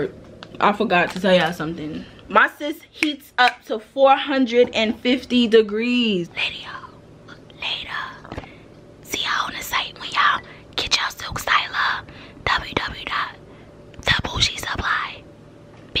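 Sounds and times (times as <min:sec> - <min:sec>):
woman whispering: 0:07.6 - 0:08.3, 0:09.1 - 0:13.4, 0:14.0 - 0:15.2.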